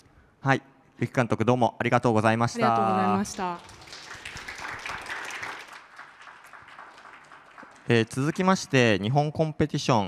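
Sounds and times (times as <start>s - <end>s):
audience applauding: 2.6s - 8.9s.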